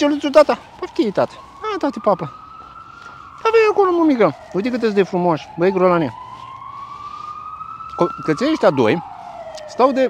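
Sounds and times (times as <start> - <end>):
siren wailing: 0.0 - 10.0.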